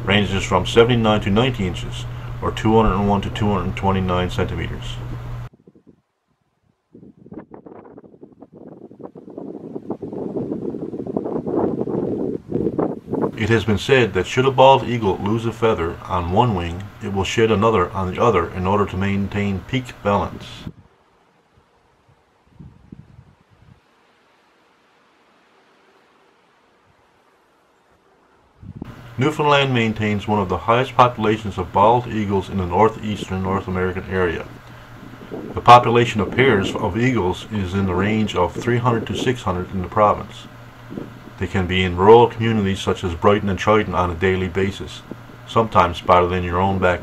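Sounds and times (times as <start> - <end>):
wind buffeting microphone: 0.0 - 20.9, 21.6 - 23.9, 28.6 - 47.0.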